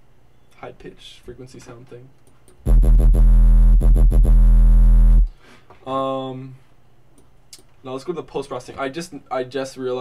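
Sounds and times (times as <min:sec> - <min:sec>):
distorted sine-wave sub bass: 0:02.7 - 0:05.4.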